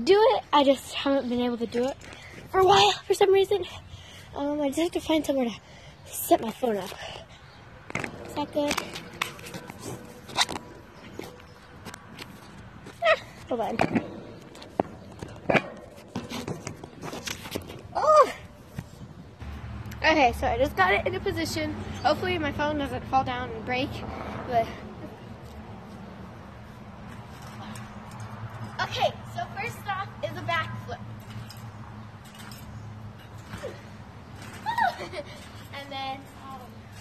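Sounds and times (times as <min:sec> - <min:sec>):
trampoline mat and springs knocking: 0:12.9 - 0:18.0.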